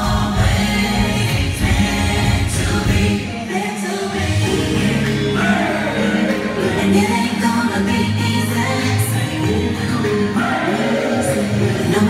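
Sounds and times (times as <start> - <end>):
amplified music with heavy bass: 0.0 - 12.0
women singing into microphones: 0.0 - 12.0.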